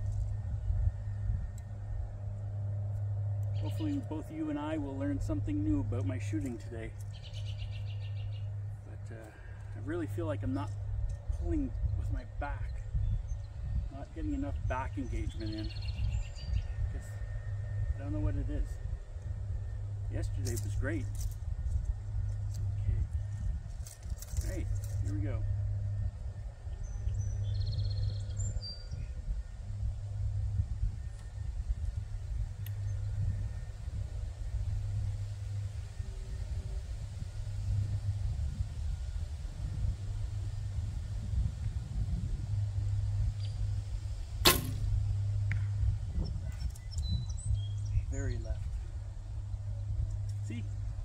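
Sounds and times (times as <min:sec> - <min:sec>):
wind rumble on microphone: 0:00.0 - 0:51.0
bowstring snap: 0:44.4 - 0:45.7.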